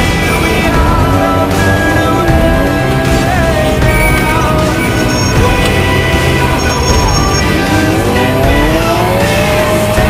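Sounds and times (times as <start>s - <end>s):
background music: 0.0s - 10.0s
race vehicle engine accelerating: 0.0s - 10.0s.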